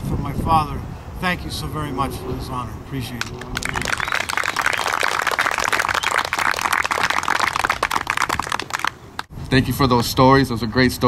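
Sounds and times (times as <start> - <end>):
crowd applauding: 3.2 - 9.3.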